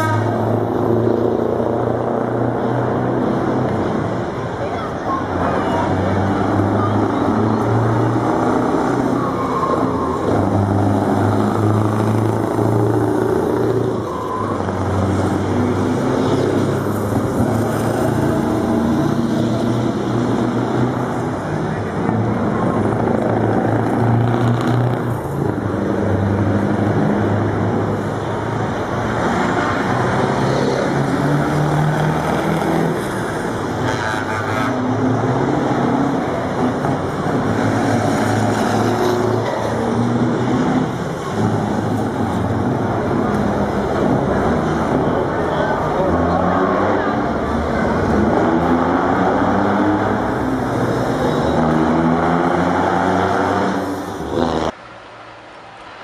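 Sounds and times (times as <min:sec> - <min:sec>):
truck engines passing: 0:00.0 - 0:56.0.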